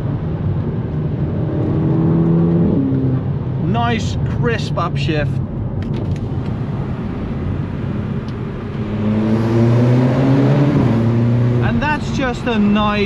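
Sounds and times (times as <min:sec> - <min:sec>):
car engine revving: 0:00.0 - 0:05.4, 0:06.1 - 0:13.0
road noise: 0:00.0 - 0:13.0.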